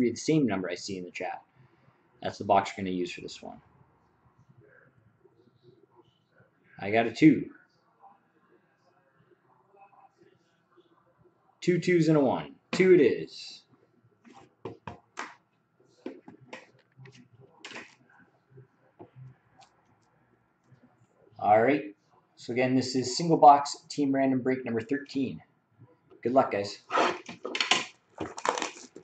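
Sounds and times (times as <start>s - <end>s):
plastic shrink-wrap crinkling and tearing: 27.6s - 29.0s.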